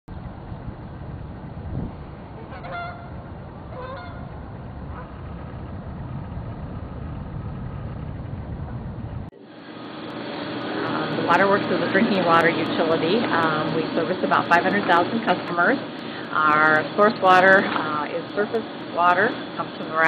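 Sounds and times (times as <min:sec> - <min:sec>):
low outdoor rumble: 0:00.1 - 0:20.0.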